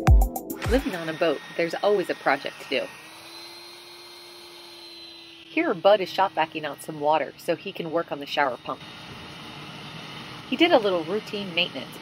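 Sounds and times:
shop vacuum running: 0:00.6 - 0:12.0.

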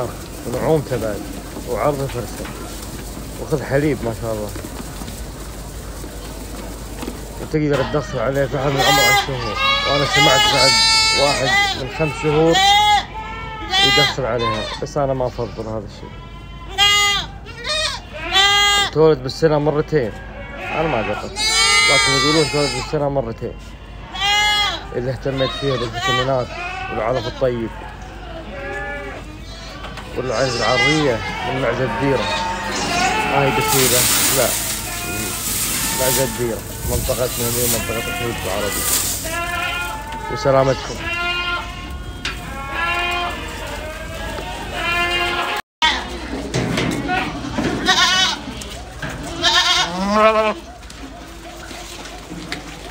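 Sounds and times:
goat bleating: 0:07.6 - 0:46.2, 0:47.0 - 0:50.7.

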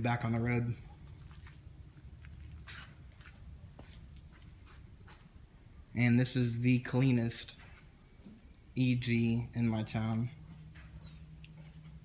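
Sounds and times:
low steady hum: 0:00.0 - 0:12.0
footsteps on concrete floor: 0:01.0 - 0:05.4, 0:10.4 - 0:12.0.

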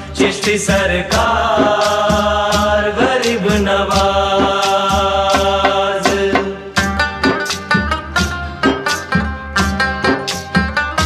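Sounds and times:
regular drum beat: 0:00.0 - 0:11.0.

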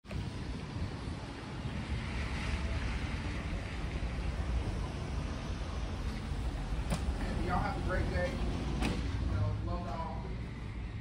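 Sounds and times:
wind rumble on microphone: 0:00.0 - 0:08.8.

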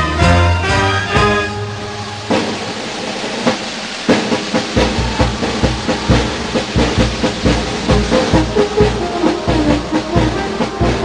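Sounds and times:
brass band playing: 0:00.0 - 0:02.6, 0:04.2 - 0:11.0
hissing noise: 0:00.7 - 0:11.0
bass drum and percussion beat: 0:04.1 - 0:11.0.

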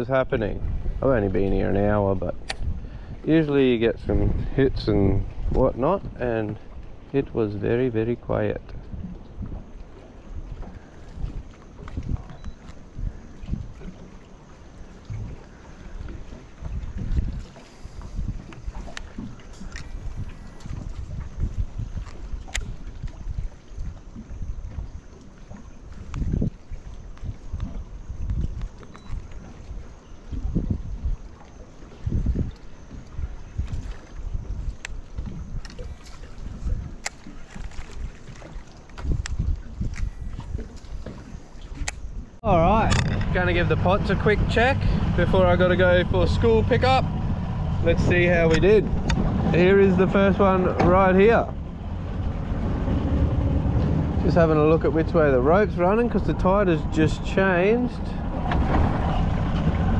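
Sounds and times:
water slapping against hull: 0:00.0 - 0:59.9
wind buffeting microphone: 0:00.0 - 0:59.9.

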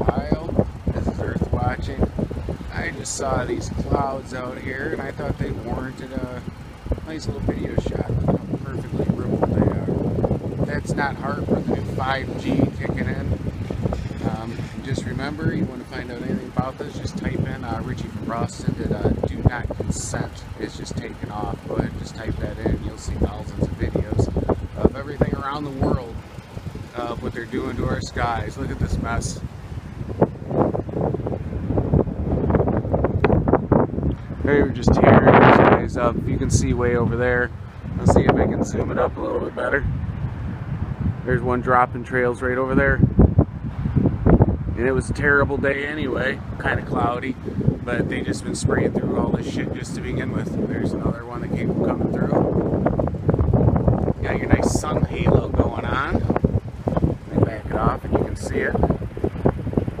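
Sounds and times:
wind buffeting microphone: 0:00.0 - 1:00.0
person talking: 0:02.7 - 0:10.0, 0:10.6 - 0:13.4, 0:14.2 - 0:26.2, 0:26.8 - 0:29.4, 0:38.0 - 0:39.9, 0:54.2 - 0:56.3, 0:57.3 - 0:58.8.

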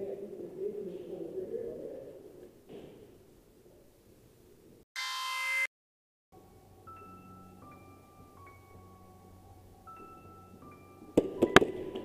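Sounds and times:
electronic tone sound effect: 0:05.0 - 0:05.7.

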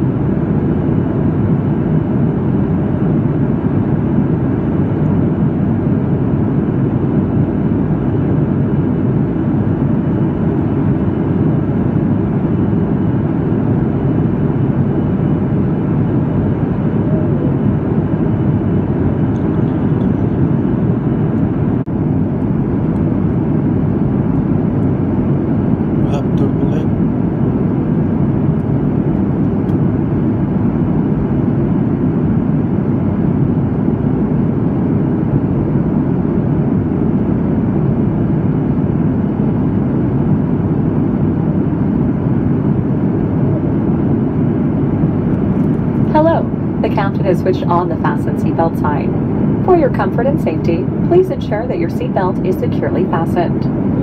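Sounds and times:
airplane cabin engine rumble: 0:00.0 - 0:54.0.

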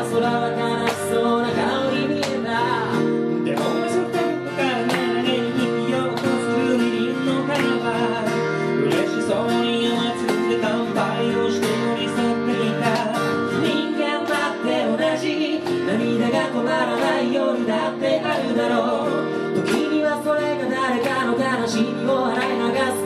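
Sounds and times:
acoustic guitars strummed: 0:00.0 - 0:23.0
two men singing: 0:00.0 - 0:23.0.

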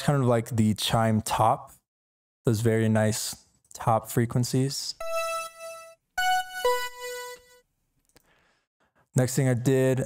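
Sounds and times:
synth chime notes: 0:05.0 - 0:07.6.

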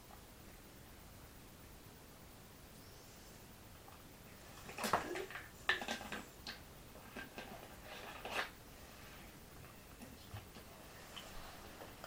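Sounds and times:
plastic bottle handling noises: 0:04.6 - 0:08.6.

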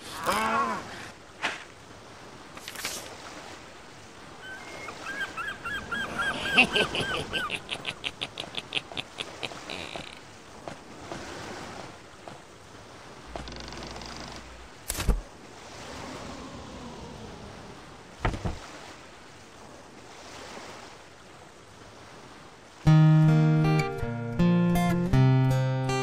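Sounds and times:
gull calling: 0:04.4 - 0:10.2.

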